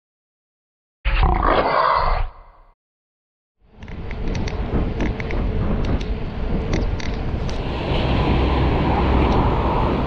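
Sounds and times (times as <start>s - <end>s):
big cat roaring: 1.1s - 2.4s.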